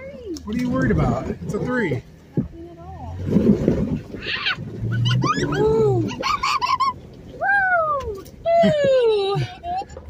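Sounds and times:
low engine hum: 0:00.0 - 0:10.0
people crying and squealing: 0:04.2 - 0:10.0.

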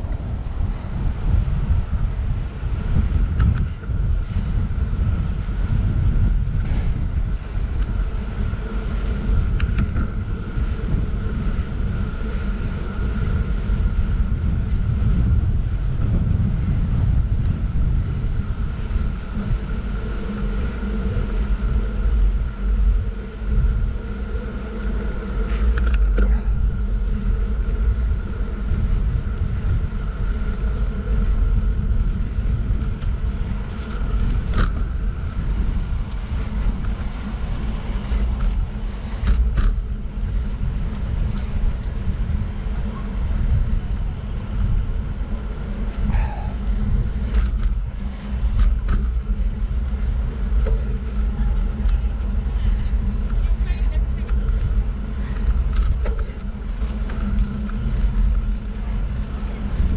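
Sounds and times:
faint steady whine: 0:00.0 - 0:59.9
wind buffeting microphone: 0:00.0 - 0:59.9.

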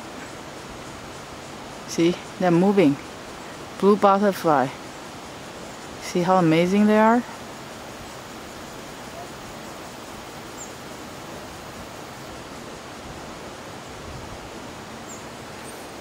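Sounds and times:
flowing water rushing: 0:00.0 - 0:16.0.

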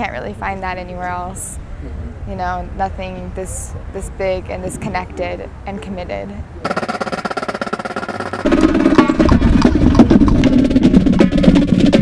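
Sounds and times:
low drums: 0:03.8 - 0:12.0
snare drum rhythm: 0:06.7 - 0:12.0.

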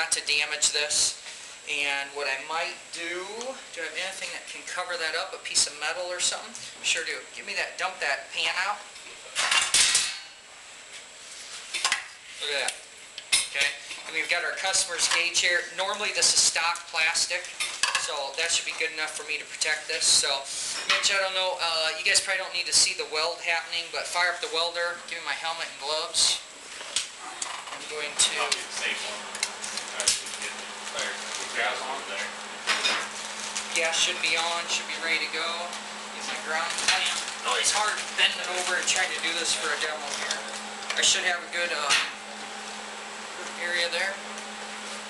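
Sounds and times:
steady hum: 0:00.0 - 0:45.0.

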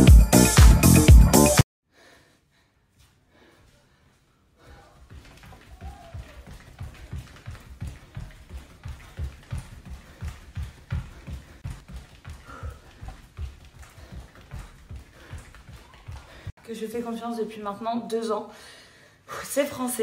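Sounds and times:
bare feet thudding on floor: 0:05.0 - 0:16.6.

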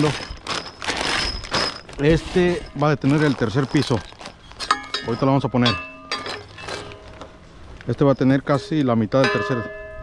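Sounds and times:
plastic bag crinkling: 0:00.0 - 0:05.6.

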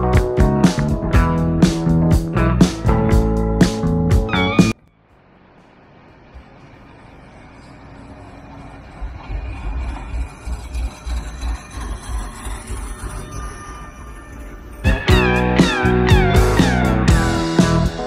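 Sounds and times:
guitar music: 0:00.0 - 0:04.8, 0:14.8 - 0:18.0
tram rumbling on rails: 0:04.2 - 0:18.0
thin high tones: 0:04.5 - 0:17.4.

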